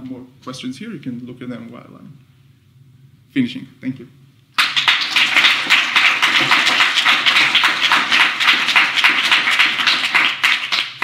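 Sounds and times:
audience applauding: 4.6 - 11.0.

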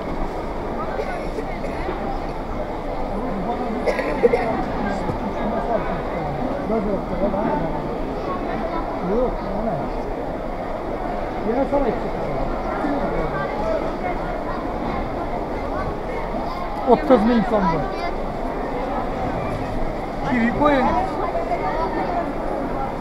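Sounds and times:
hubbub of voices: 0.0 - 23.0.

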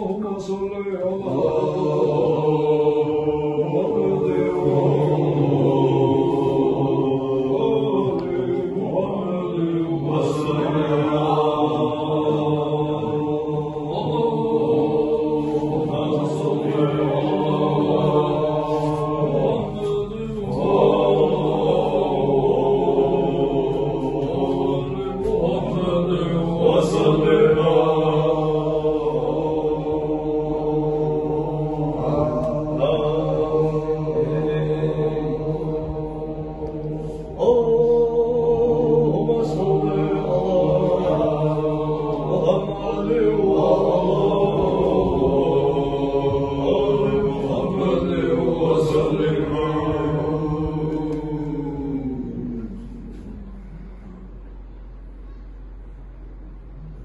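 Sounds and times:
men chanting together: 0.0 - 54.1.

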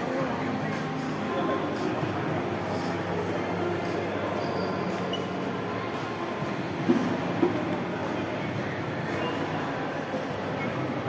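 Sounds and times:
indoor crowd hubbub: 0.0 - 11.0.

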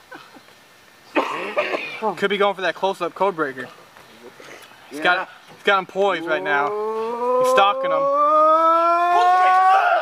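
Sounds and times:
man holding long ooh: 6.4 - 10.0.

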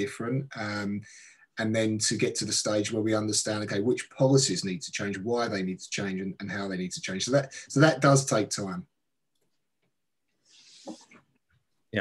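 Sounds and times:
man breathing in: 1.0 - 1.5, 10.4 - 11.2.

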